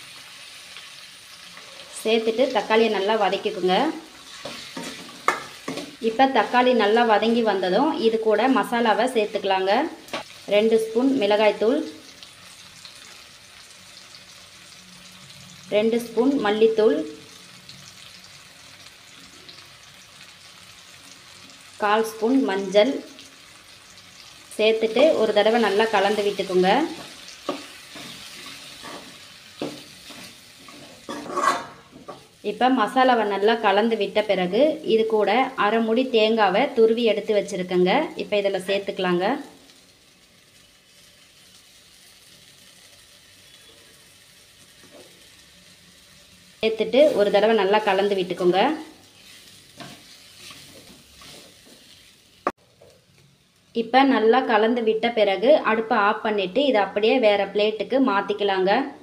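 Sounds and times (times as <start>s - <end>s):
vegetables sizzling in oil: 0.0s - 59.0s.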